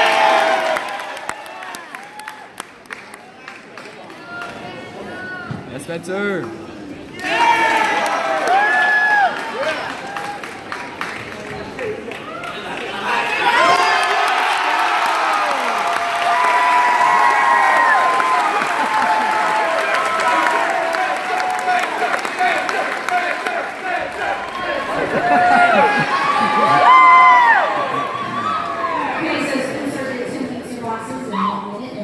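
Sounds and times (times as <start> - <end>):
crowd cheering and whooping: 0.0 - 2.6, 7.2 - 10.5, 12.1 - 29.6.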